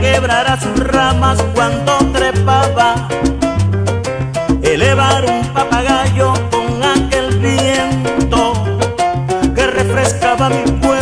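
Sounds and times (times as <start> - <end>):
percussion: 0.0 - 11.0
repeating bass pattern: 0.0 - 11.0.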